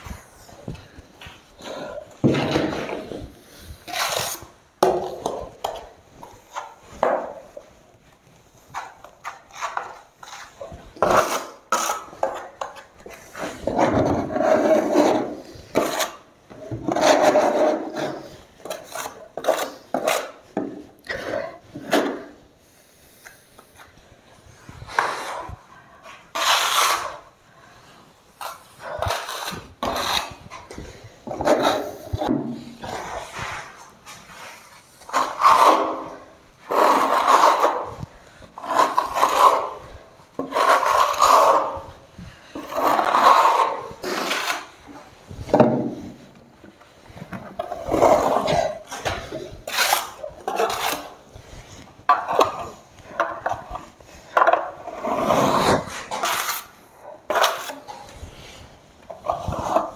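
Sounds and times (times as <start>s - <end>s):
spatula scraping plaster in bucket: 1.6s - 4.6s, 8.7s - 22.4s, 24.7s - 46.2s, 47.4s - 59.9s.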